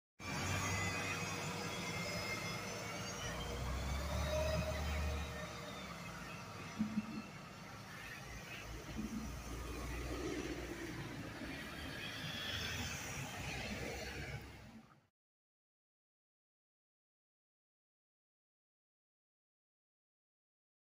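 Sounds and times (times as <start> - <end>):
bus engine rumble: 0.2 - 15.0
street traffic: 0.2 - 15.1.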